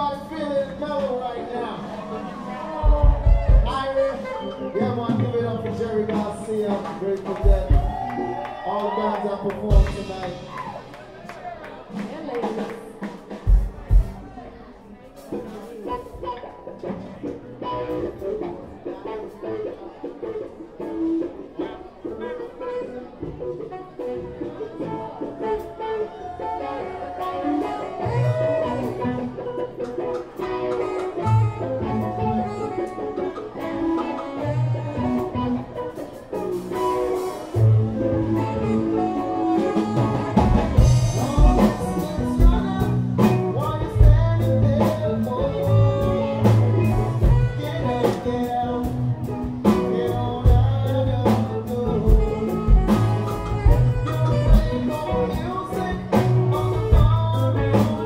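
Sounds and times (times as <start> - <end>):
bass: 0.0 - 11.0, 26.7 - 58.0
guitars: 0.0 - 58.0
drums and percussion: 0.1 - 18.6, 23.2 - 58.0.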